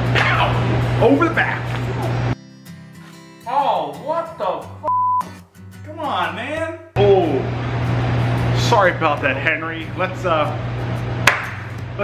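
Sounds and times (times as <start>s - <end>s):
background music: 0.0s - 6.9s
censor bleep: 4.9s - 5.4s.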